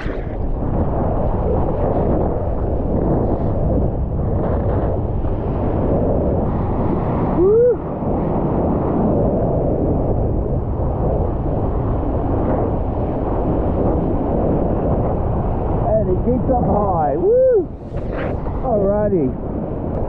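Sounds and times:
sea water rushing and sloshing: 0.0s - 16.9s
wind buffeting microphone: 0.0s - 20.0s.

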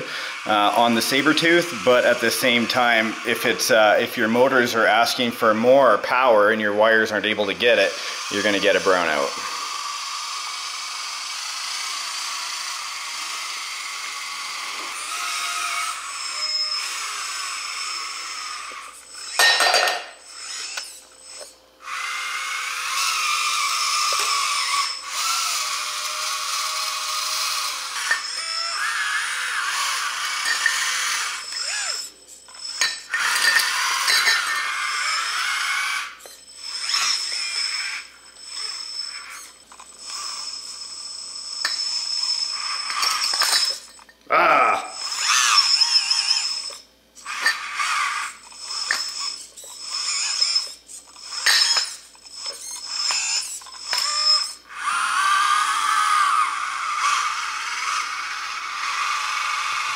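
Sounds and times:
electric motors whining: 0.0s - 59.9s.

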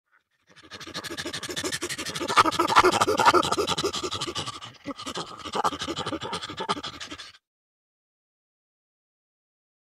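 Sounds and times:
chimpanzee panting calls: 0.5s - 7.4s.

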